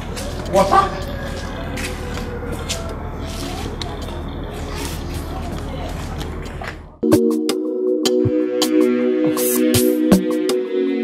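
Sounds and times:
faint indistinct voices: 0:00.0 - 0:07.0.

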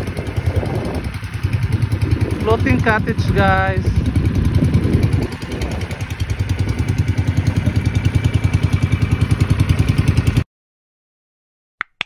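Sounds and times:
boat engine throbbing: 0:00.0 - 0:10.4.

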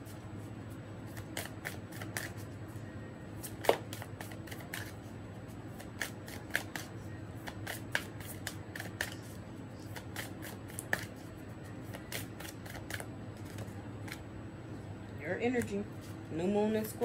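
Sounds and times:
cards shuffled by hand: 0:01.1 - 0:02.5, 0:03.4 - 0:05.0, 0:05.8 - 0:14.2.

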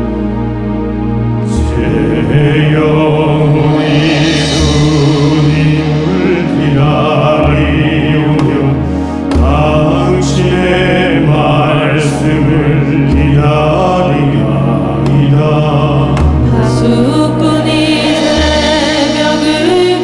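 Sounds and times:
low drone: 0:00.0 - 0:20.0
slow traditional ensemble music: 0:00.0 - 0:20.0.

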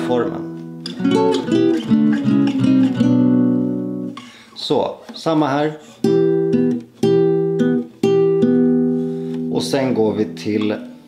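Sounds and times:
acoustic guitar fingerpicking: 0:00.4 - 0:04.4, 0:05.8 - 0:11.0.

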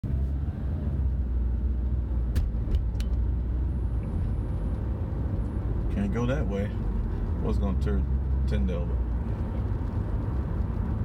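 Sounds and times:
car interior road rumble: 0:00.0 - 0:11.0.

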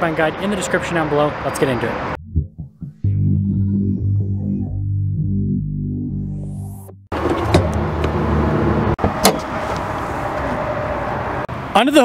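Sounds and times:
rising whoosh: 0:02.1 - 0:06.9
synthesizer music: 0:02.2 - 0:07.1.

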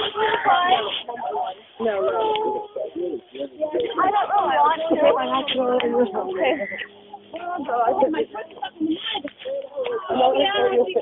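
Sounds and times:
voices making wordless drawn-out sounds: 0:00.0 - 0:11.0.

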